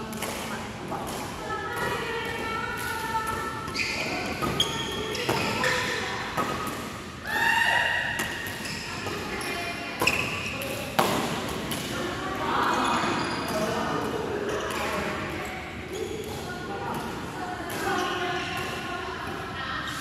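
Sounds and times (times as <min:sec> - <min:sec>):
rackets hitting shuttlecock: 0:10.0 - 0:12.0.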